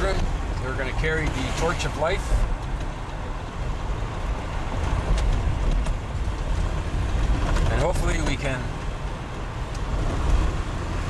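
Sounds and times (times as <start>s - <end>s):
truck engine and road rumble: 0.0s - 11.0s.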